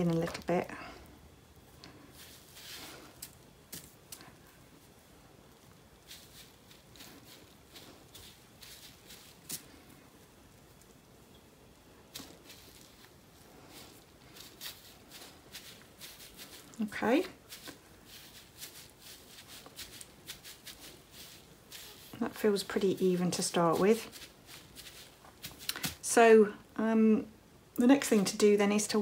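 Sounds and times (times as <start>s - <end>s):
wool fibre rustling: 0.0s - 27.2s
hands patting fibre: 1.8s - 4.6s, 5.7s - 10.2s, 12.1s - 26.2s.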